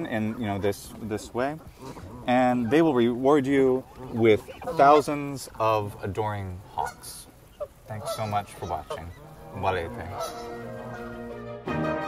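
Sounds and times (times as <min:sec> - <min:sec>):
goose honking: 0:00.0 - 0:12.0.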